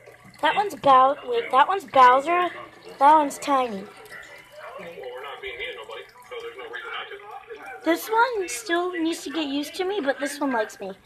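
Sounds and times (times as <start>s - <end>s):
person filming talking: 0.4s - 11.0s.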